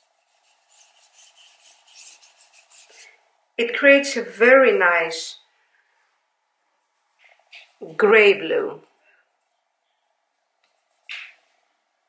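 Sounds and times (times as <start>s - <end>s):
paintbrush scratching on paper: 0.0s - 3.2s.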